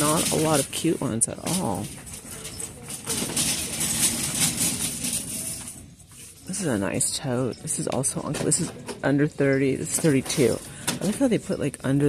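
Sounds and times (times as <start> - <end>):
shopping cart rolling on hard floor: 0.0 - 11.5.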